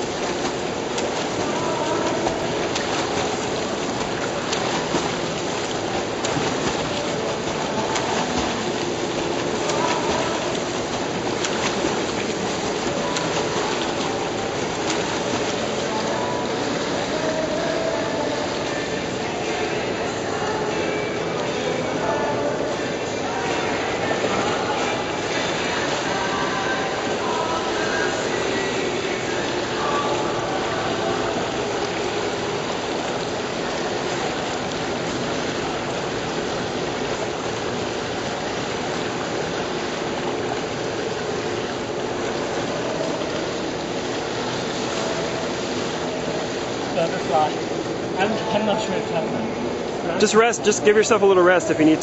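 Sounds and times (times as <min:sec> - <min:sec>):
faint voices: 0:00.0 - 0:36.6
water splashing in pool: 0:00.0 - 0:52.0.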